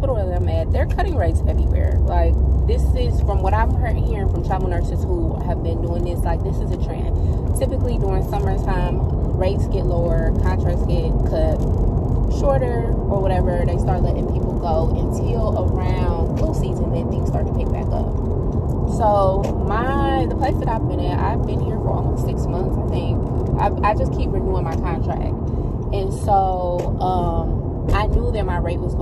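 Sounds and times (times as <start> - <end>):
woman talking: 0.0 - 11.6, 12.3 - 18.2, 18.8 - 29.0
car engine and road rumble: 0.0 - 29.0.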